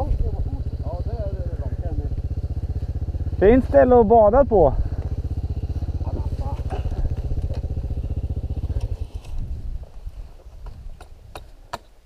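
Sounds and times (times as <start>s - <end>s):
dirt bike engine idling: 0.0s - 11.1s.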